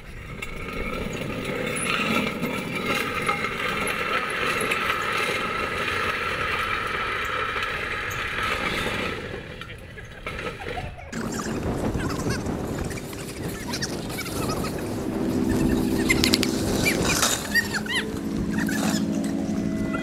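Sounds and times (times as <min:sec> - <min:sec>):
trike rollers grinding on asphalt: 0:00.0 - 0:20.0.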